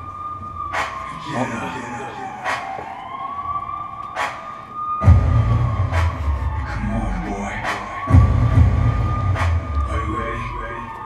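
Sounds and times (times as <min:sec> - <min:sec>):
siren-like wailing tone: 0:00.0 - 0:11.0
deep bass hits: 0:05.0 - 0:10.2.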